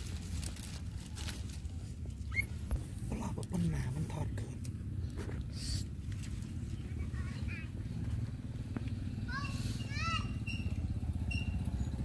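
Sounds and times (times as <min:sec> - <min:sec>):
young animal squeaking: 0:02.2 - 0:02.7, 0:10.2 - 0:11.7.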